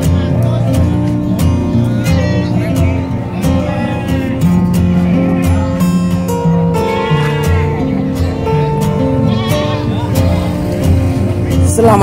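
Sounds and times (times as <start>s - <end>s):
background music with held notes: 0.0s - 12.0s
goats bleating: 1.8s - 11.2s.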